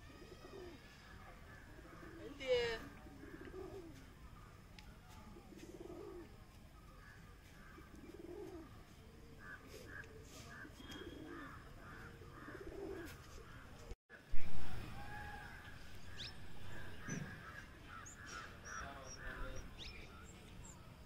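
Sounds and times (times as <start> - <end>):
pigeons cooing: 0.0 - 4.0, 5.4 - 6.3, 7.7 - 8.8, 9.4 - 13.6.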